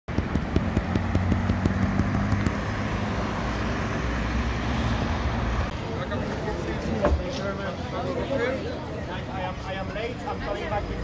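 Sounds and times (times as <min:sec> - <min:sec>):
car engine at low speed: 0:00.1 - 0:05.8.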